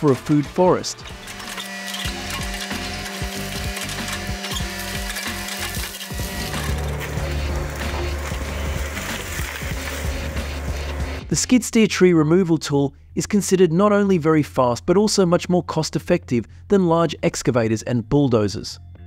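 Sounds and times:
excavator engine and hydraulics: 0.0s - 11.4s
background music: 0.0s - 19.0s
wood and roots cracking: 1.0s - 11.0s.

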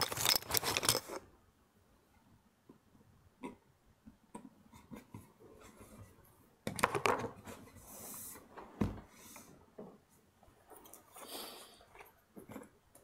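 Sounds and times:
thump: 8.8s - 9.1s.

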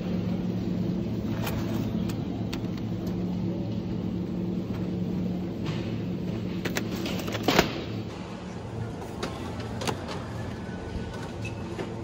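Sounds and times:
supermarket background hum: 0.0s - 12.0s.

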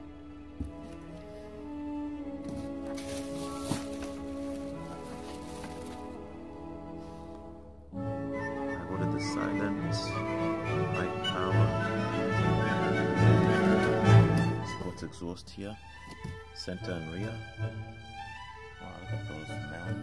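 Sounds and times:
background music of held chords: 0.0s - 20.0s.

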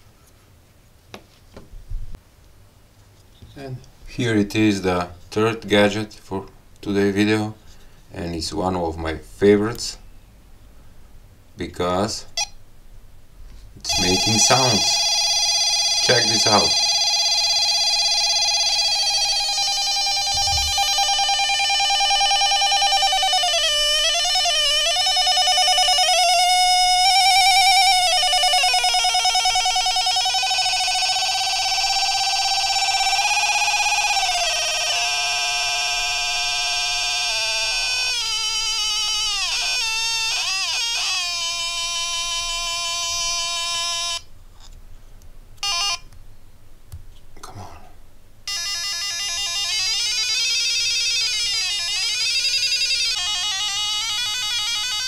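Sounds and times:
electronic tone wobbling in pitch: 13.9s - 44.2s, 48.5s - 55.0s.

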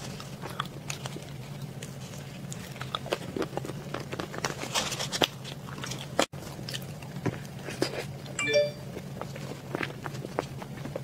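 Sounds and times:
person chewing wetly: 0.0s - 4.5s, 5.2s - 8.4s.

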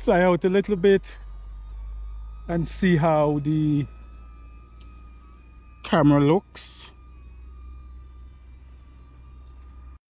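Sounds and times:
drone propellers whining: 0.0s - 10.0s.

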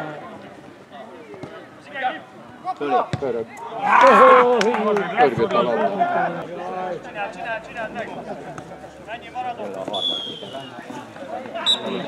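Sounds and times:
players calling: 1.8s - 12.0s.

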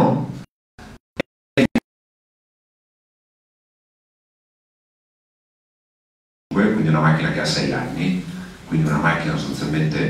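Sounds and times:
man's amplified voice: 6.5s - 10.0s.

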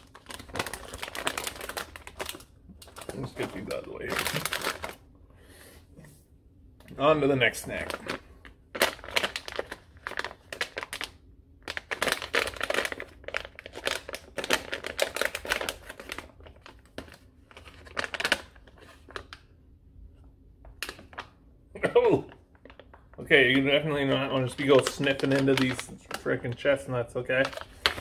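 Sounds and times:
plastic snack bag crinkling: 0.0s - 5.1s, 7.0s - 19.5s, 22.1s - 28.0s.

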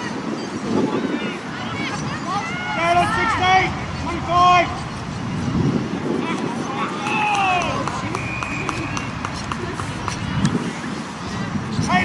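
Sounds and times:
players shouting: 2.2s - 4.9s, 6.3s - 10.0s.

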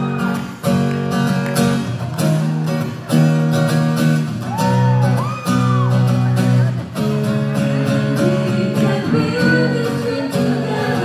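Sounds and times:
acoustic guitar strumming chords: 0.0s - 11.0s.

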